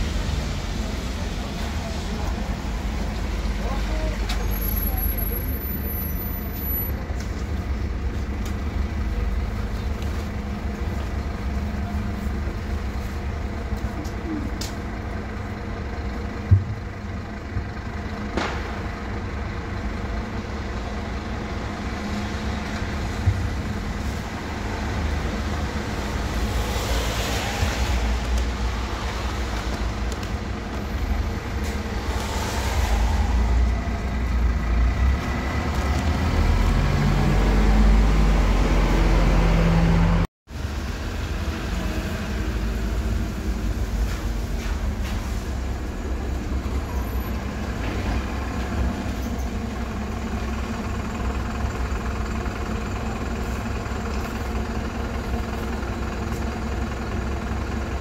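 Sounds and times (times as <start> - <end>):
bus engine idling: 0.0 - 58.0.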